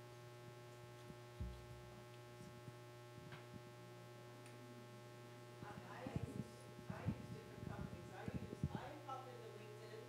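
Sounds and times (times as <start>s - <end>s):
low electrical hum: 0.0s - 10.0s
soft low thump: 1.4s - 1.8s.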